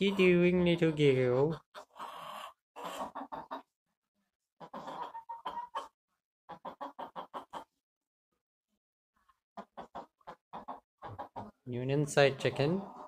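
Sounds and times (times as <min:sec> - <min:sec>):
hens clucking: 0:00.0 - 0:03.8, 0:04.6 - 0:07.8, 0:09.2 - 0:13.0.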